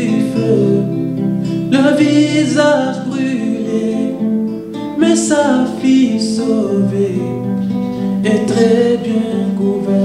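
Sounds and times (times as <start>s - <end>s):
acoustic guitar: 0.0s - 10.0s
man singing: 0.0s - 10.0s.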